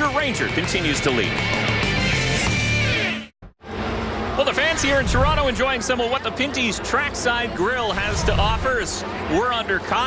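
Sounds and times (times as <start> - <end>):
rock music: 0.0 - 3.3
outdoor crowd noise: 0.0 - 10.0.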